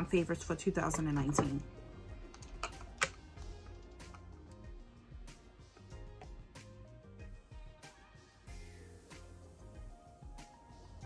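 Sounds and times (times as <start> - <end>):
faint background music: 0.0 - 11.0
makeup container clicks: 2.3 - 3.4.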